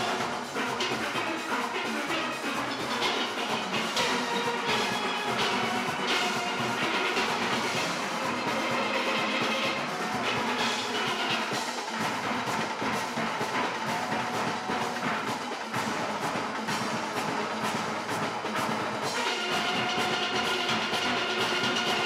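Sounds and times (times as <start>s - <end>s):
steel orchestra playing: 0.0s - 22.0s.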